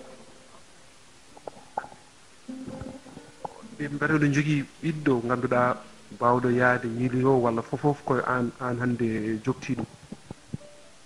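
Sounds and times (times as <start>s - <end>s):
microphone handling noise: 1.4s - 2.0s, 2.6s - 4.0s, 9.2s - 10.6s.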